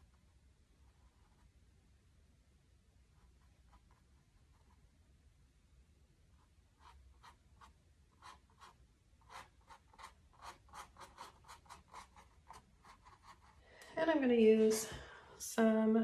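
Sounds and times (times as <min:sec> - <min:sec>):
paintbrush scratching on canvas: 0:00.8 - 0:01.5, 0:03.1 - 0:04.9, 0:06.3 - 0:13.6
person speaking: 0:13.8 - 0:16.0.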